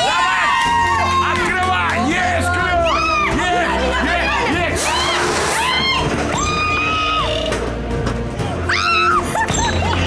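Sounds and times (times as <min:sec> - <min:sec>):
high-pitched voices shrieking: 0:04.8 - 0:07.6.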